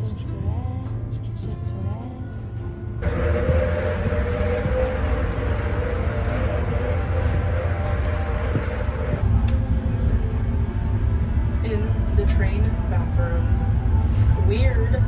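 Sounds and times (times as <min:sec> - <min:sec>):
steady hum: 0:02.9 - 0:15.0
train wheels rumbling on track: 0:03.0 - 0:13.4.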